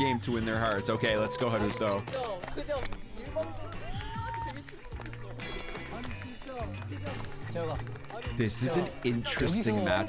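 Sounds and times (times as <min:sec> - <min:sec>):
background music: 0:00.0 - 0:10.0
people talking: 0:06.6 - 0:10.0.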